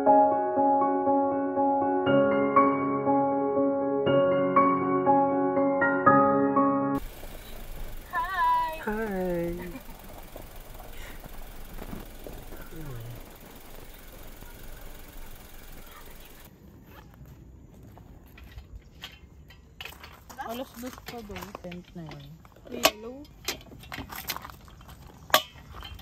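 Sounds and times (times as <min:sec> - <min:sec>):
outdoor background noise: 0:07.0 - 0:26.0.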